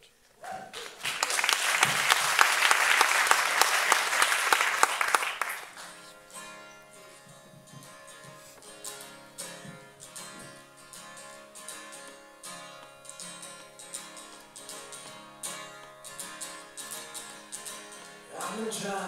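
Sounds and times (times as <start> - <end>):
acoustic guitar strumming: 4.3 - 19.0.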